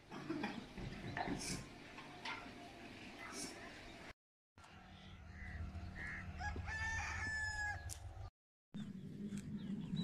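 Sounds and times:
rooster crowing: 0:06.0 - 0:07.9.

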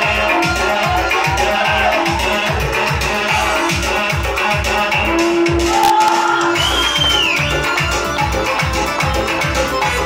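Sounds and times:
crowd shouts: 0:00.0 - 0:02.8, 0:05.2 - 0:07.5
keyboard dance music: 0:00.0 - 0:10.0.

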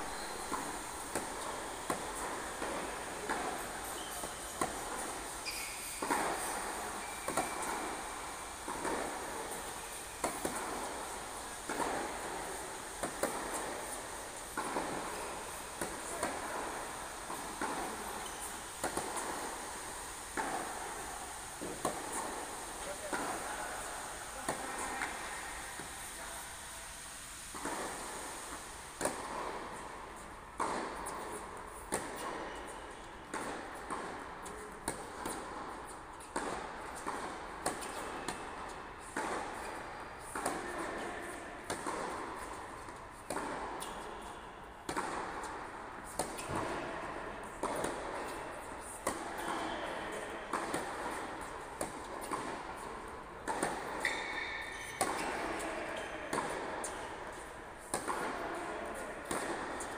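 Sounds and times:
tennis balls struck echoing: 0:00.1 - 0:26.0, 0:27.5 - 0:59.9.

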